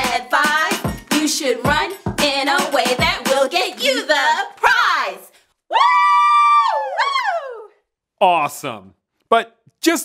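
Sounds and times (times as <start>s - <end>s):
high-pitched cheering yell: 5.7s - 7.7s.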